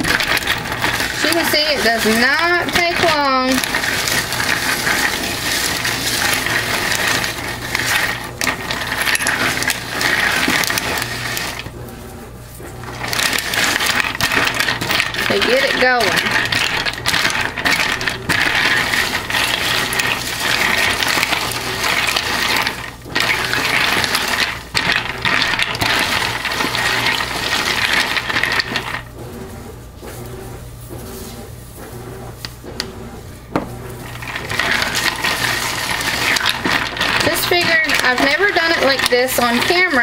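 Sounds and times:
ice cubes clinking in plastic pitcher: 0.0s - 11.7s, 12.9s - 29.1s, 34.1s - 40.0s.

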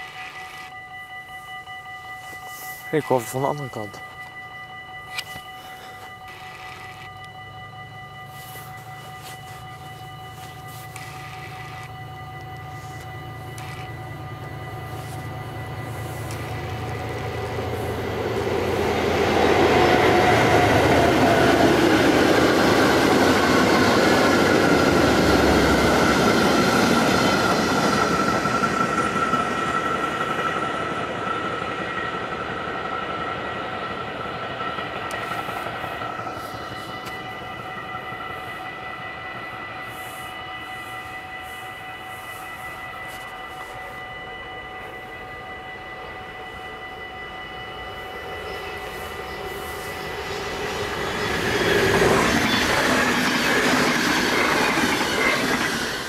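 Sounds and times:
diesel locomotive engine rumble: 0.0s - 56.0s
train wagons rolling: 48.4s - 56.0s.

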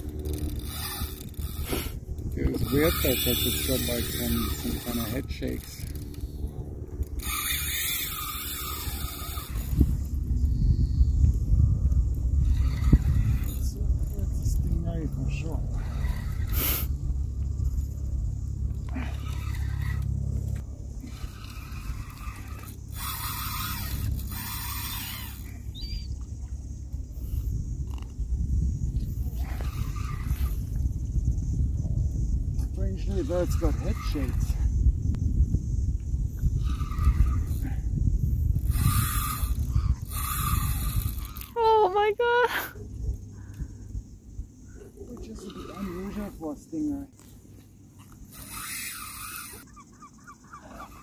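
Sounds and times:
wind buffeting microphone: 0.0s - 47.0s.

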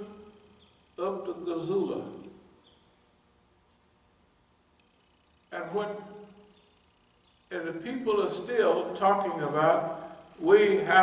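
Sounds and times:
man speaking: 1.0s - 2.2s, 5.5s - 6.2s, 7.5s - 11.0s.

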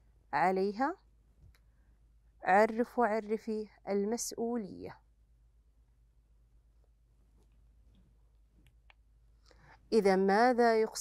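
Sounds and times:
woman speaking: 0.4s - 1.0s, 2.4s - 5.0s, 9.9s - 11.0s.

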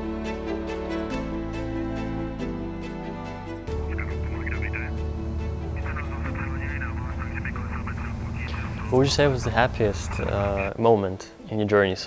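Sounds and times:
background music: 0.0s - 12.0s
propeller plane engine drone: 3.7s - 10.7s.

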